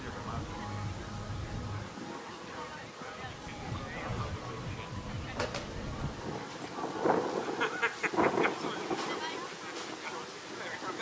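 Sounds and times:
wind buffeting microphone: 0:03.3 - 0:11.0.

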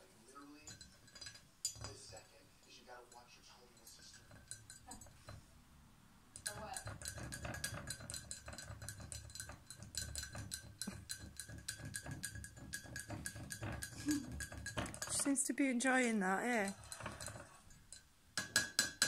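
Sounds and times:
parrot beak tapping in ceramic mug: 0:00.4 - 0:05.4, 0:06.3 - 0:15.3, 0:16.6 - 0:19.0.

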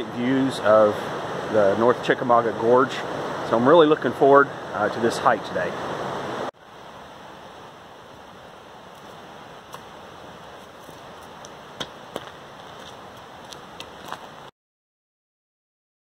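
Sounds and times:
creek rapids rushing: 0:00.0 - 0:14.5
footsteps on gravel: 0:10.5 - 0:14.5.

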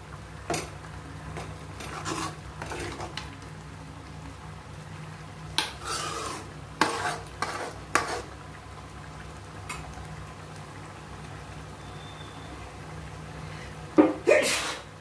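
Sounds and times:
metal spoon scraping metal pan: 0:01.8 - 0:03.1, 0:05.6 - 0:08.3.

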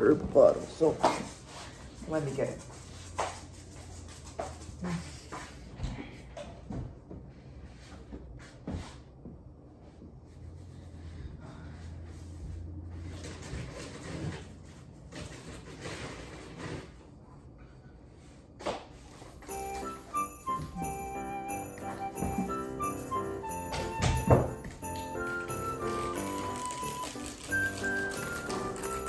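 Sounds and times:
music with jingling bells: 0:19.4 - 0:29.0.

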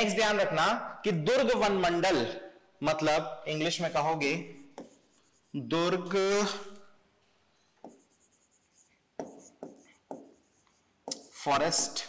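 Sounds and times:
pen tapping on screen: 0:04.7 - 0:05.0, 0:07.8 - 0:08.2, 0:09.2 - 0:11.3.

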